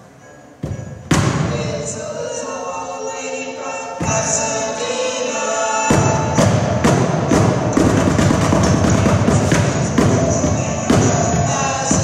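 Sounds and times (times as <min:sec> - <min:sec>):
chorus singing rock and roll: 0:01.3 - 0:07.8, 0:08.4 - 0:12.0
bucket drums struck with sticks: 0:05.9 - 0:12.0.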